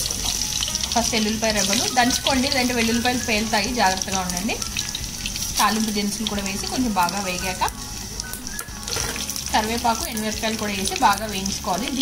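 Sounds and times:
hot oil sizzling in a pan: 0.0 - 12.0.

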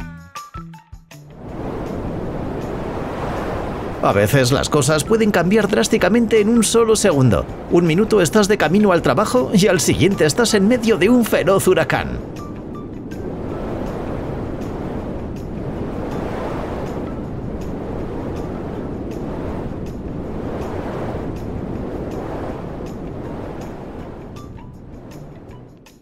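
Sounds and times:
strong gusting wind: 1.3 - 26.0.

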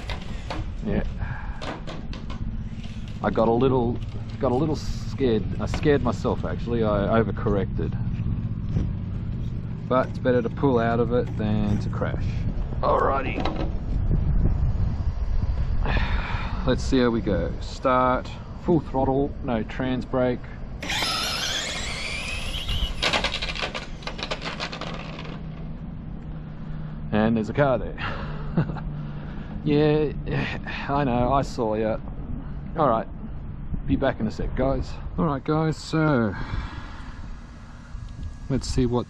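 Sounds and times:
engine running: 0.0 - 39.0
electric motor whining: 20.8 - 25.7.

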